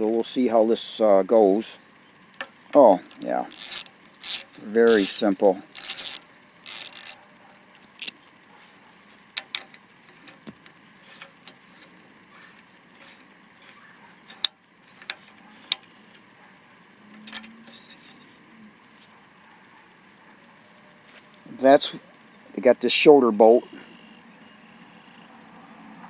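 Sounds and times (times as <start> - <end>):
socket ratchet clicking: 3.2 - 7.2.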